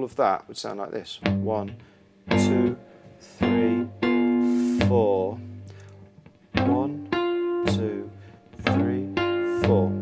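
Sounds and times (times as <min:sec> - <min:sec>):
fingerstyle blues guitar: 0:01.2 - 0:10.0
guitar note sliding upward: 0:01.3 - 0:10.0.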